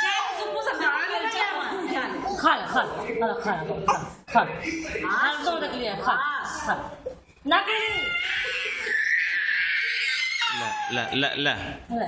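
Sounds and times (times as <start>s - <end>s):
toddler crying: 7.7s - 11.2s.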